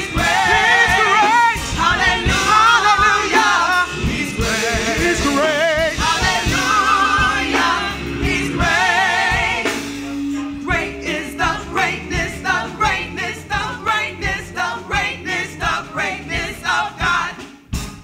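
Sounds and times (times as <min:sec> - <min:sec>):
gospel group singing: 0:00.0 - 0:17.9
steady beat: 0:00.0 - 0:18.0.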